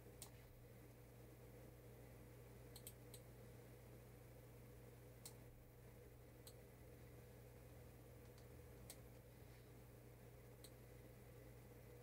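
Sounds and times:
low steady hum: 0.0s - 12.0s
faint computer mouse clicks: 2.7s - 3.3s, 10.6s - 10.8s.

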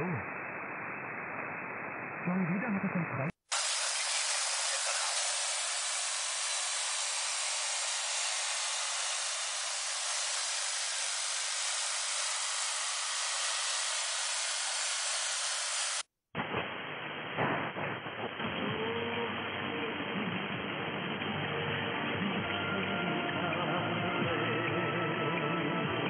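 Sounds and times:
shortwave radio hiss: 0.0s - 22.4s.

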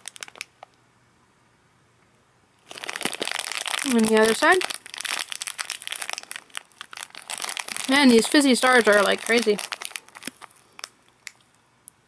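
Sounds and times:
plastic wrapper crinkling: 0.0s - 0.7s, 2.6s - 11.6s.

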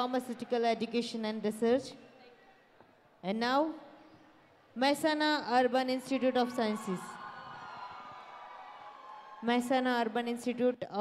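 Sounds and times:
faint crowd and pa hall noise: 0.0s - 11.0s.

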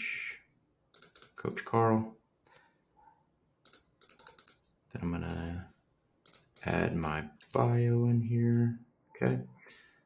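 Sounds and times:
computer keyboard keys tapping: 0.9s - 1.4s, 3.6s - 4.7s, 6.2s - 7.6s.

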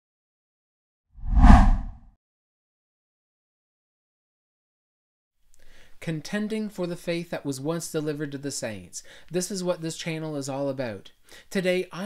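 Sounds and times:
whoosh with low rumble: 1.2s - 2.0s.

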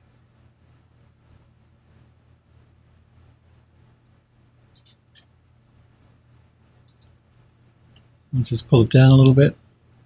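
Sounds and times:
low steady hum: 0.0s - 10.0s
computer mouse clicks: 4.7s - 5.3s, 6.8s - 7.2s.

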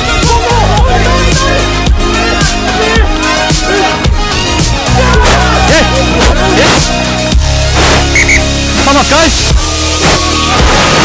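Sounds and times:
electronic music with bass and beat: 0.0s - 11.0s.

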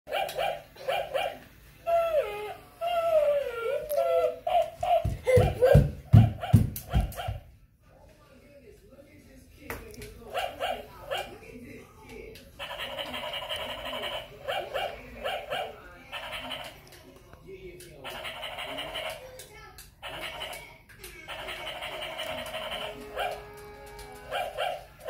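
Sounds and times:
toy dog electronic barks: 0.1s - 2.0s, 12.6s - 16.8s, 18.0s - 19.3s, 20.0s - 20.7s, 21.3s - 25.0s.

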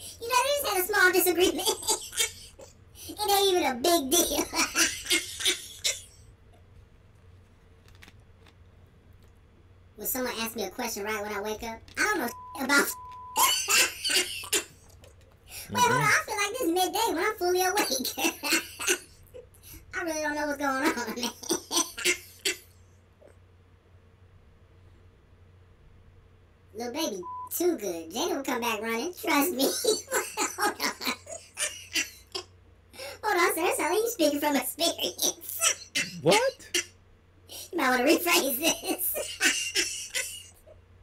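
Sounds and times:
censor bleep: 12.3s - 13.4s, 27.2s - 27.5s
man laughing: 15.7s - 16.1s, 36.0s - 36.5s.

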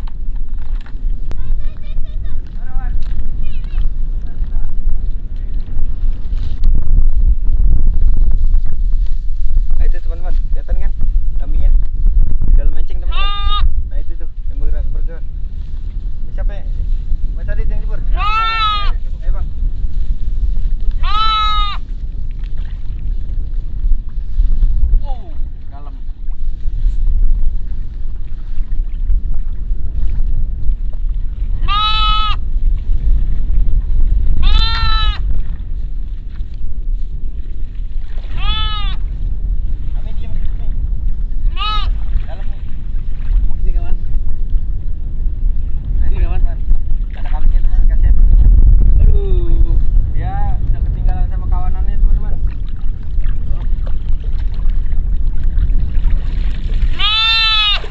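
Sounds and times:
goat bleating: 13.0s - 13.7s, 18.1s - 19.0s, 21.0s - 21.8s, 31.6s - 32.4s, 34.4s - 35.2s, 38.3s - 39.0s, 41.5s - 42.0s, 56.9s - 57.9s.

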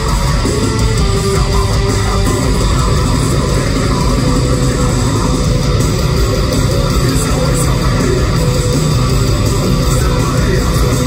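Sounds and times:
distorted electric guitars: 0.0s - 11.0s
drums: 0.0s - 11.0s
heavy metal band playing live: 0.0s - 11.0s.

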